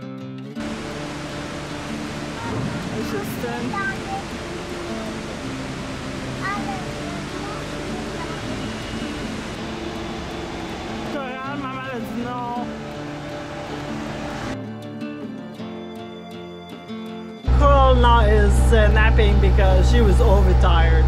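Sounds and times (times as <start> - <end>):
steady rushing noise: 0.6 - 14.6.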